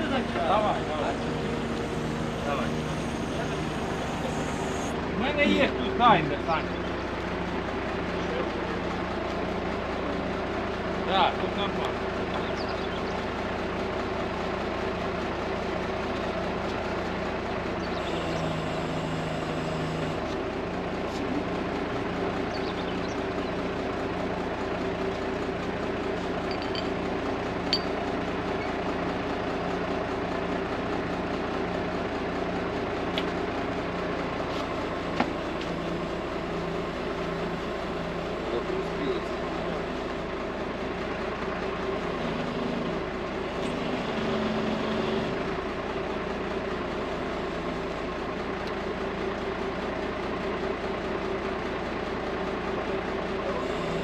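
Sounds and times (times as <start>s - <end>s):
diesel engine droning: 0.0s - 54.0s
light metallic clinks: 26.5s - 26.9s, 27.7s - 28.0s.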